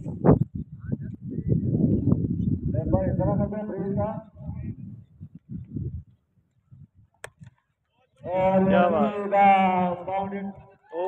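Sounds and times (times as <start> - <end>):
wind rumble on microphone: 0.0 - 7.2, 8.2 - 11.0.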